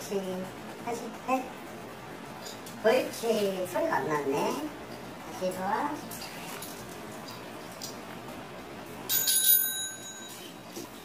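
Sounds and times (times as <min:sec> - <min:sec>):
small bell ding: 0:09.1 - 0:10.6.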